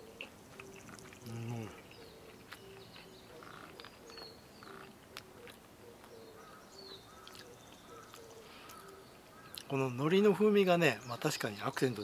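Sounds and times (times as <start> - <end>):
faint birdsong: 0.0 - 12.0
chewing clicks: 0.2 - 6.2, 7.2 - 9.7.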